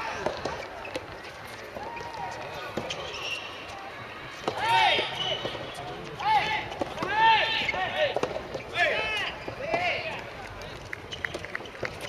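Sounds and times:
players shouting calls: 4.3s - 10.3s.

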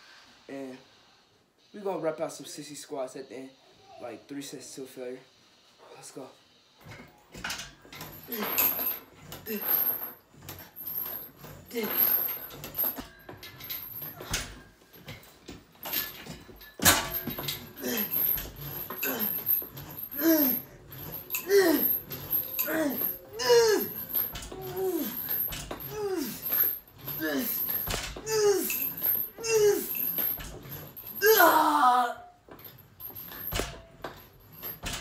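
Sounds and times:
man groaning with effort: 17.8s - 18.3s, 19.0s - 19.4s, 20.1s - 20.7s, 21.4s - 30.0s, 31.2s - 32.3s.

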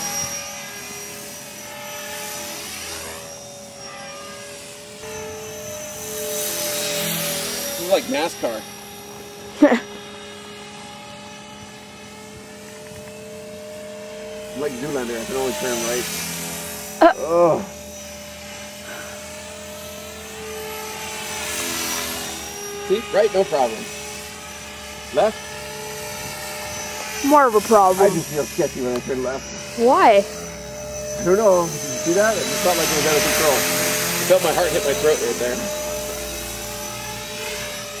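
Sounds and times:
rc helicopter motor whine: 0.0s - 38.0s.

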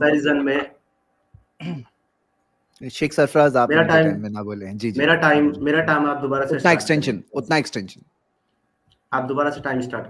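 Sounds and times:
man clearing throat: 1.6s - 2.0s
person speaking: 2.7s - 8.1s.

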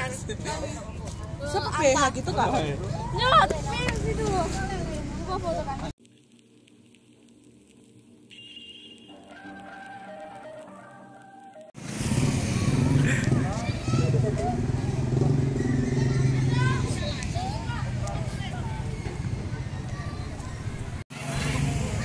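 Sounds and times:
voices talking: 12.4s - 22.0s.

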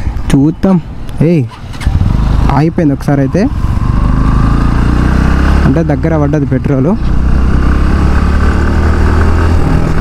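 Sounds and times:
motorcycle engine cruising: 0.4s - 10.0s.

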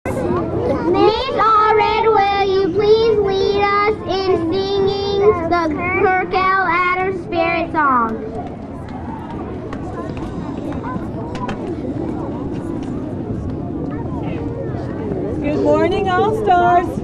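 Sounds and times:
murmur of children outdoors: 0.0s - 17.0s.

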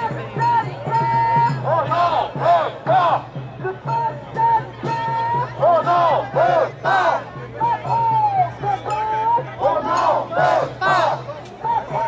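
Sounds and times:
protest crowd chanting: 0.0s - 12.0s.

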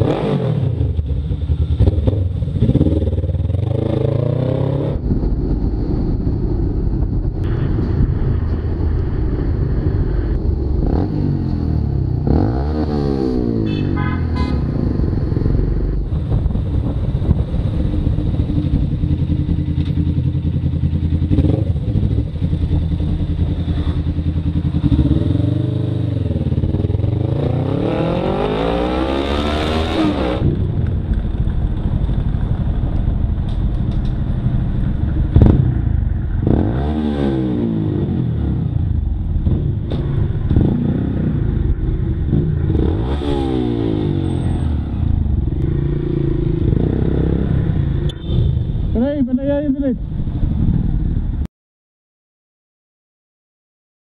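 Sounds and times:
motorcycle engine revving: 0.0s - 49.1s
rising whine: 4.6s - 12.2s.

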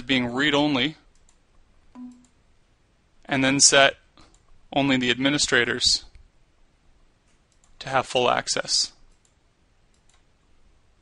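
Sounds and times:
computer mouse clicks: 1.1s - 1.4s, 7.3s - 7.8s, 9.1s - 10.3s.

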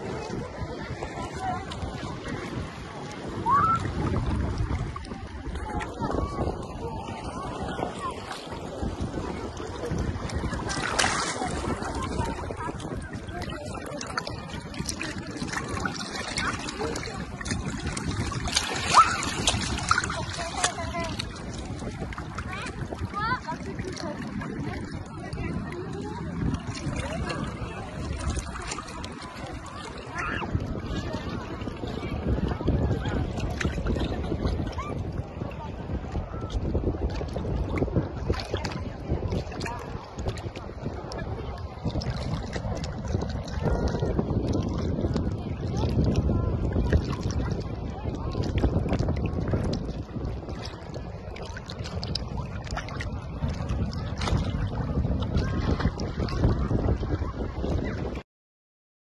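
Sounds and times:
water lapping and splashing: 0.0s - 58.2s
wind buffeting microphone: 0.0s - 58.2s.

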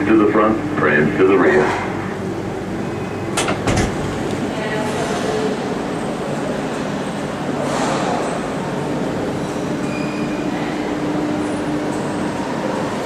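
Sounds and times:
monorail train running: 0.0s - 13.0s.

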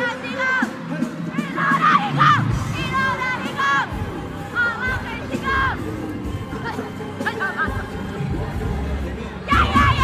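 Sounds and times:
crowd screaming and cheering: 0.0s - 10.0s
music playing: 0.0s - 10.0s.

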